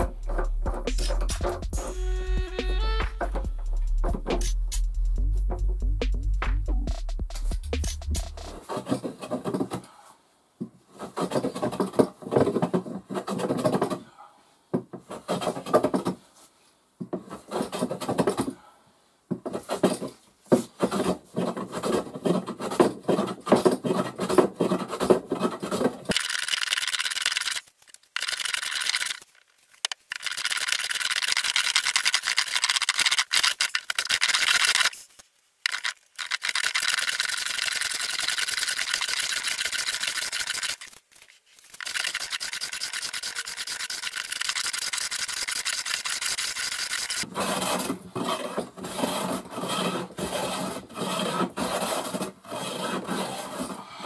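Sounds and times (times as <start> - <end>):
hand plane rasping on wood: 19.5 - 26.1, 47.2 - 54.0.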